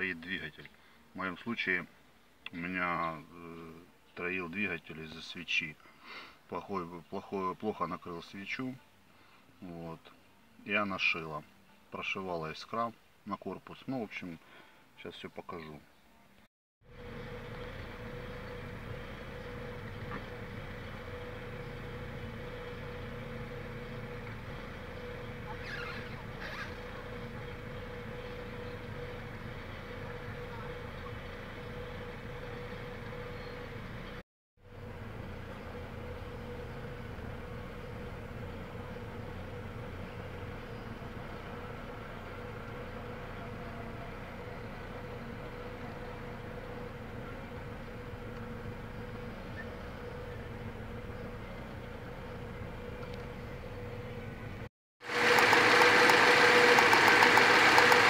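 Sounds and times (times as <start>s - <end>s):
car engine idling rough and misfiring: 16.8s - 58.0s.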